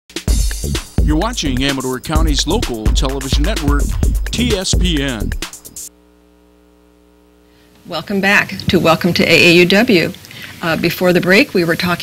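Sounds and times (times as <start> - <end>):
electrical mains hum: 0.3 - 12.0
person speaking: 1.0 - 5.5.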